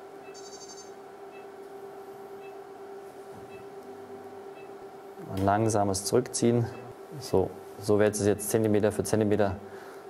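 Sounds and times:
steady device hum: 0:00.0 - 0:10.0
high chirp: 0:00.2 - 0:01.5.

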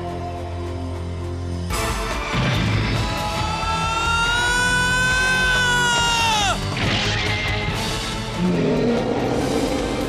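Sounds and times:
soundtrack music: 0:00.0 - 0:10.0
long high cry: 0:03.2 - 0:06.6.

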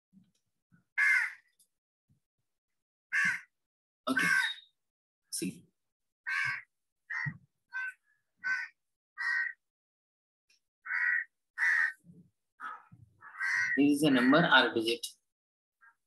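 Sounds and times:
bird harsh calls: 0:01.0 - 0:01.5, 0:03.2 - 0:03.5, 0:04.1 - 0:04.8, 0:06.3 - 0:09.6, 0:10.9 - 0:14.6.

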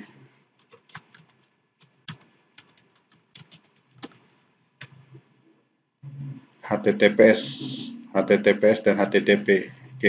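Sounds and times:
keyboard typing: 0:00.6 - 0:05.1.

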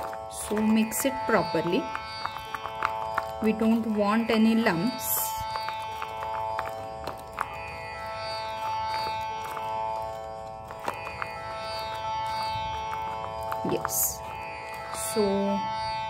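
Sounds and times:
sustained drone: 0:00.0 - 0:16.0.

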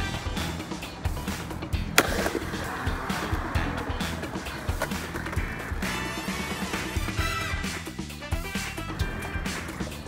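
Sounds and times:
background music with steady beat: 0:00.0 - 0:10.0
skateboard wheels rolling on concrete: 0:00.0 - 0:10.0
skateboard clack: 0:00.2 - 0:07.9, 0:08.6 - 0:10.0.

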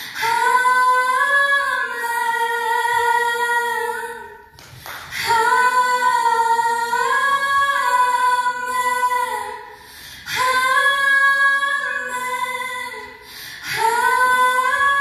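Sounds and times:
women singing: 0:00.0 - 0:15.0.

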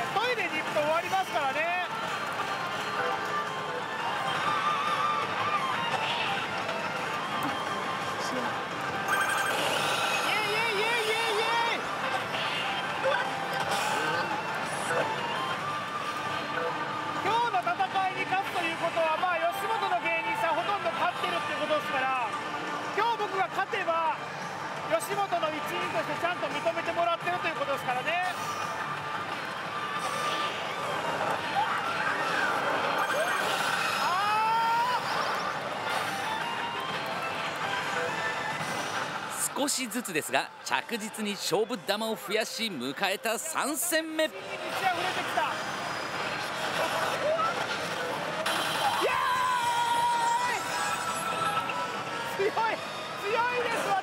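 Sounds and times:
electronic slot machine music: 0:00.0 - 0:27.6, 0:35.0 - 0:44.2.

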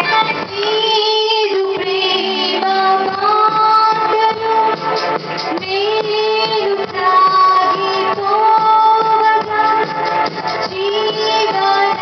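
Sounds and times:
woman singing into microphone: 0:00.0 - 0:12.0.

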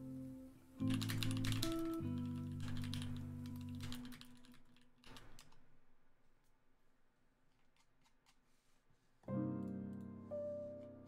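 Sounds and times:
background music sustained notes: 0:00.0 - 0:04.7, 0:09.3 - 0:11.0
typing on a computer keyboard: 0:00.8 - 0:05.6.

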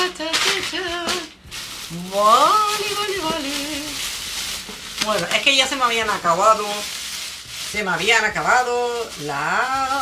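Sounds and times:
woman singing wordless notes: 0:00.0 - 0:04.0, 0:08.4 - 0:10.0
paper and plastic bag rustling: 0:00.0 - 0:10.0.

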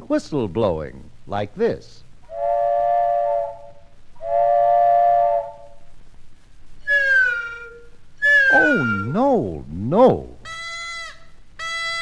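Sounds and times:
train whistle blasts: 0:02.3 - 0:05.9, 0:06.8 - 0:09.2, 0:10.5 - 0:12.0
whistle sliding down in pitch: 0:06.8 - 0:09.2.

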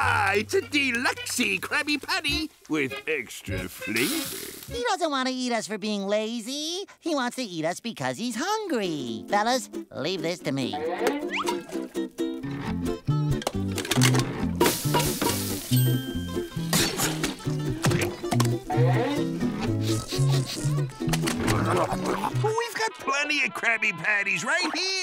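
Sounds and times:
cartoon music with bouncy bass: 0:00.0 - 0:04.9, 0:09.1 - 0:22.5.

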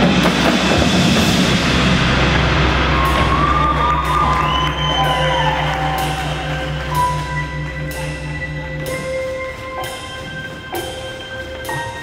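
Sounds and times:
steady low drone: 0:00.0 - 0:12.0
arena crowd cheering: 0:02.6 - 0:07.8.

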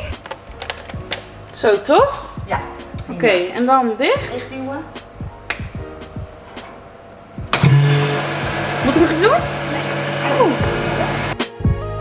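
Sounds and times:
vacuum pump humming: 0:04.2 - 0:11.4.

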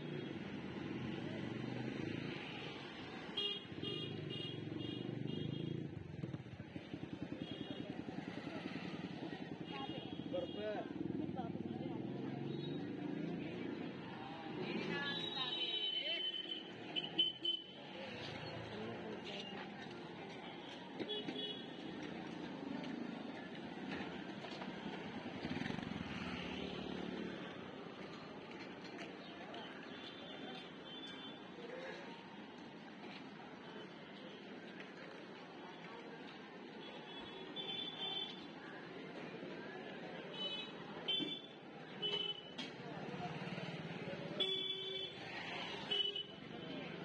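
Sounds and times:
street traffic: 0:00.0 - 0:47.0.

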